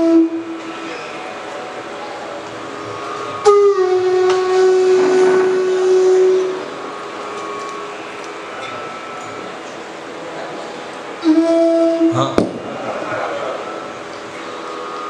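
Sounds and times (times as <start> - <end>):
bamboo flute long notes: 0.0 - 15.0.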